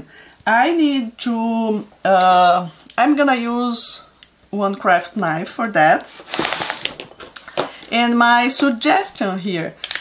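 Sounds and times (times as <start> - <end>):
fabric strip rustling: 6.0 - 7.1.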